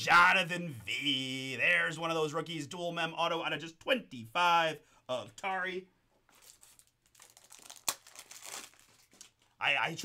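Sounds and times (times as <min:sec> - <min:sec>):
trading cards rustling: 0:06.2 - 0:09.6.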